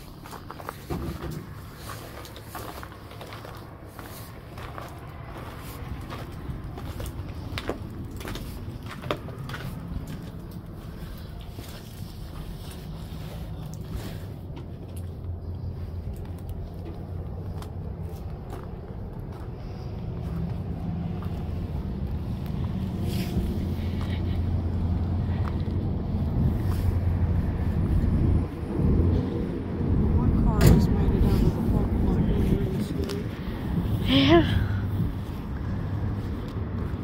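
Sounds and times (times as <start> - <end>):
car engine and tyres humming: 0.0 - 37.0.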